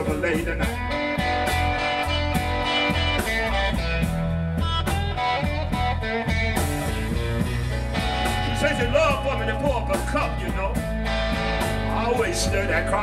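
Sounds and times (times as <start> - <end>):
person singing: 0.0 - 1.0
drums with steady beat: 0.0 - 13.0
electric guitar: 0.0 - 13.0.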